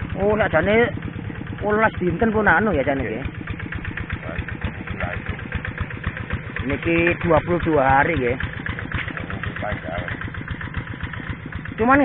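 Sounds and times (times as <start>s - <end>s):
small engine chugging: 0.0s - 12.0s.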